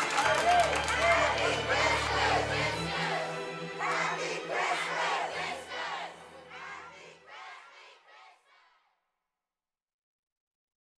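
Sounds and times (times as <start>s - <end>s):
children's choir singing: 0.5s - 8.8s.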